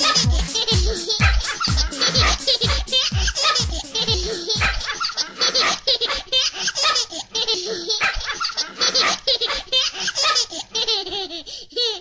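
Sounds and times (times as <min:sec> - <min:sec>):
baby laughing: 0:00.0 - 0:12.0.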